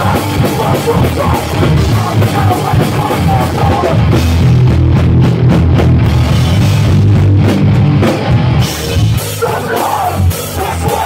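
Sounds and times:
loud punk band playing: 0.0 - 11.0.

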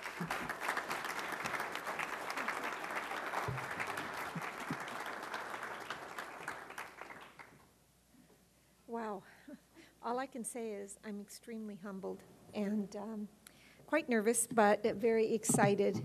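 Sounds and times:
audience applauding: 0.0 - 7.6.

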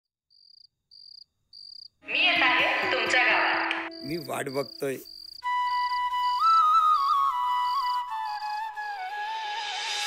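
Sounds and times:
cricket chirping: 0.3 - 2.1, 2.9 - 8.4.

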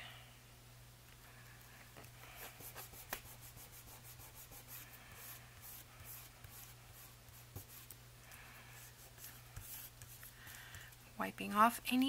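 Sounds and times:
fingertips rubbing paper: 2.3 - 8.0, 8.8 - 10.8.

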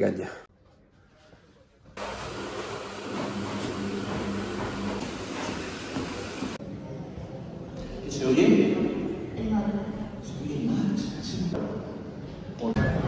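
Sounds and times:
treadmill belt moving: 2.0 - 6.6
treadmill motor hum: 2.0 - 6.6.

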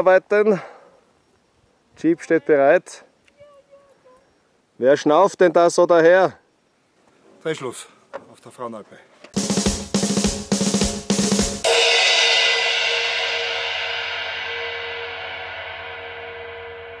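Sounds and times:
snare and kick drum hits: 9.4 - 12.6
crash cymbal: 9.6 - 17.0
held chord ringing: 11.5 - 17.0.

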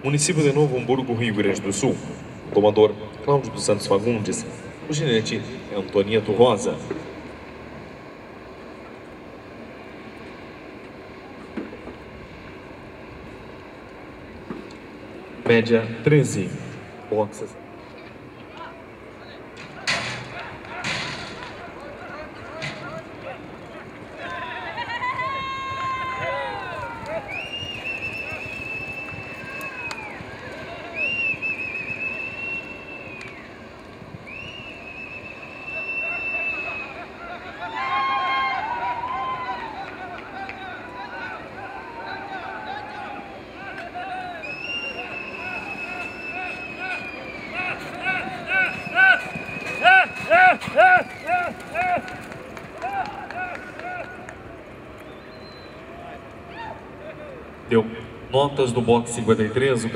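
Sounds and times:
men shouting: 19.7 - 28.5, 35.7 - 54.3
long wavering whistles: 25.6 - 39.9, 41.7 - 51.6, 55.0 - 56.8.

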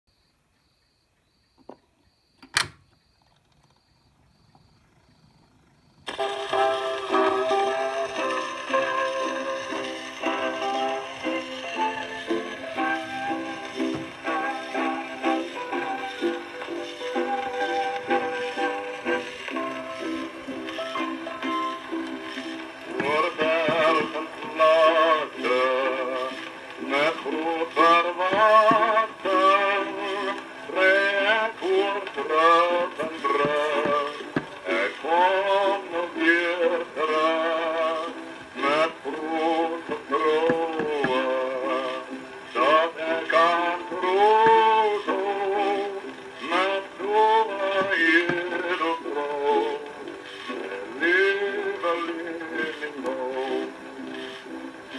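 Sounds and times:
record surface hiss: 0.1 - 54.9
man singing with vibrato: 6.1 - 54.6
thin instrumental music: 6.1 - 54.9.

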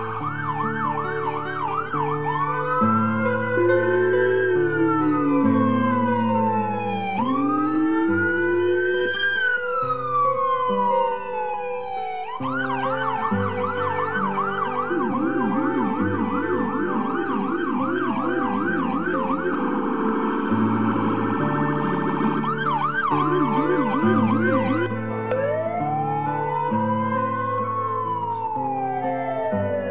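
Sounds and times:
electronic siren wailing and yelping: 0.0 - 29.9.

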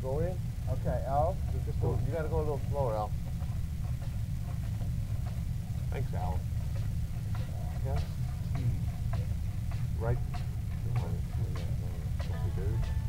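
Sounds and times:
steady low rumble: 0.0 - 13.0
person talking: 10.9 - 13.0.

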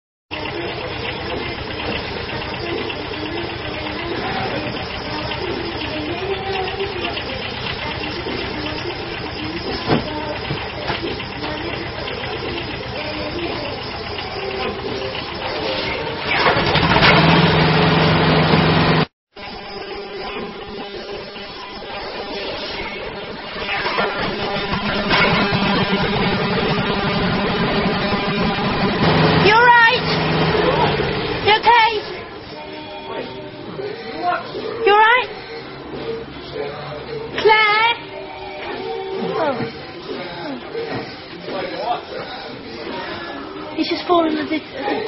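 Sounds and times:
excavator engine running: 0.3 - 32.6.

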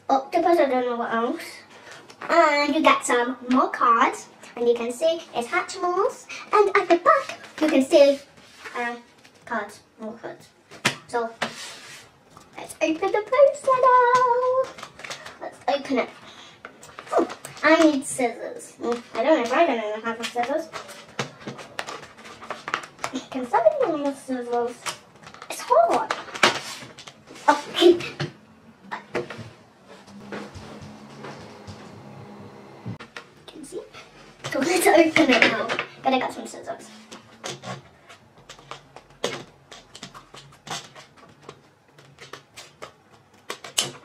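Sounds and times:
packet crinkling and rustling: 24.7 - 27.6.

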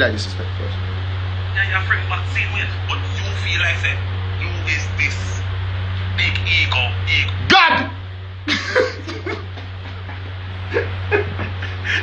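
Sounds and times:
low hum: 0.0 - 12.0
man laughing breathily: 8.5 - 12.0.

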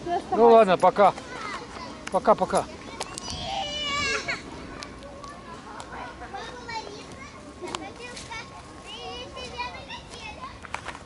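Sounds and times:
children calling and shouting: 0.0 - 11.0.

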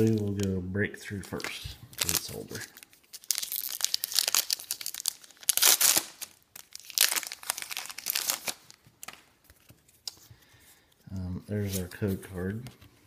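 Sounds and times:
foil wrapper tearing and crinkling: 0.0 - 0.5, 1.3 - 9.2.

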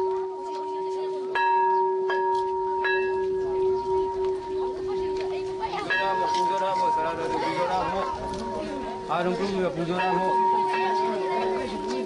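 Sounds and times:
struck metal bell ringing: 1.3 - 12.0.

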